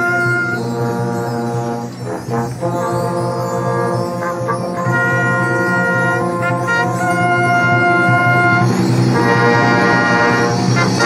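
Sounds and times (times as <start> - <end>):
brass band chords: 0.0 - 11.0.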